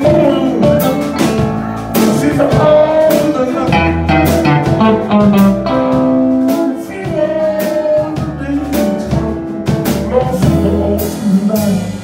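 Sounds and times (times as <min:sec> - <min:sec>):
electric guitar: 0:00.0 - 0:12.0
live blues band music: 0:00.0 - 0:12.0.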